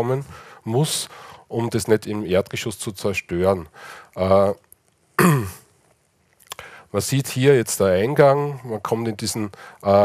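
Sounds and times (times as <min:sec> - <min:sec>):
man clearing throat: 0:05.2 - 0:05.6
mouth clicks: 0:06.3 - 0:06.7.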